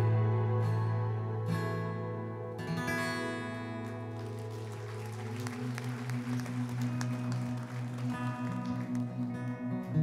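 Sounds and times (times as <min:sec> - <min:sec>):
acoustic guitar: 0:00.0 - 0:10.0
congregation clapping: 0:03.8 - 0:09.6.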